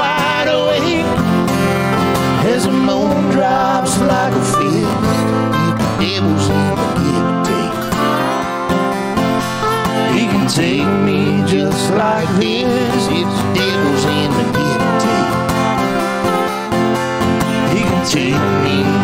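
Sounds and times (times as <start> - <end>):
man singing: 0.0 - 1.3, 2.2 - 8.5, 9.8 - 16.2, 17.4 - 19.0
acoustic guitars playing: 0.0 - 19.0.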